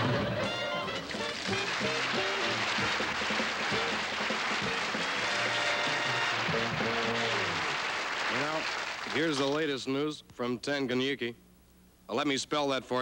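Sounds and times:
music playing: 0.0s - 9.3s
audience applause: 1.0s - 9.6s.

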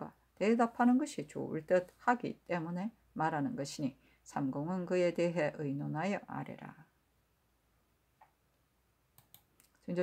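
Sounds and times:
person reading aloud: 0.0s - 7.0s, 9.8s - 10.0s
faint short clicks: 9.2s - 9.8s.

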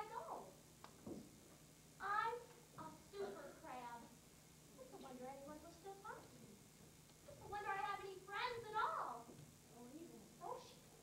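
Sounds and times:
girl's high-pitched voice: 2.0s - 4.1s, 7.3s - 9.3s.

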